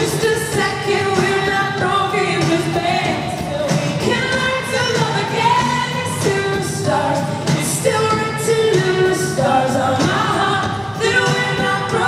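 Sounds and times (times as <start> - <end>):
live band accompaniment: 0.0 - 12.0.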